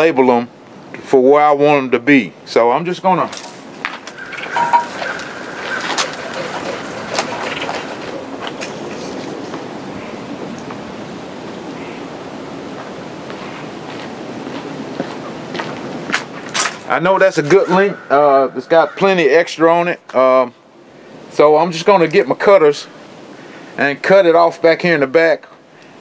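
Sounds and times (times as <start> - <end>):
steady rushing noise: 3.1 - 21.4.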